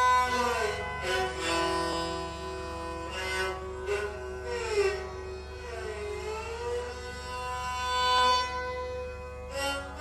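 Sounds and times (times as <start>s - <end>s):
bowed string melody: 0.0s - 10.0s.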